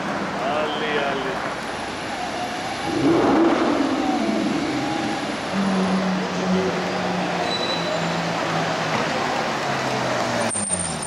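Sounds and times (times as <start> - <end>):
street traffic noise: 0.0 - 11.0
sports car accelerating past: 2.8 - 9.1.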